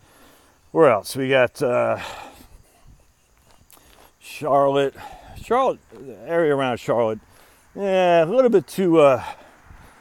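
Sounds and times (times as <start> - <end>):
man's voice: 4.2 - 7.2, 7.8 - 9.4.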